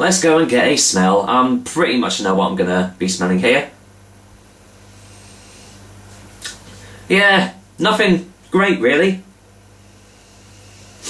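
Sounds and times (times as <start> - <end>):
low electrical hum: 0.0 - 11.0
person sniffing through nose: 4.8 - 7.0, 9.8 - 11.0.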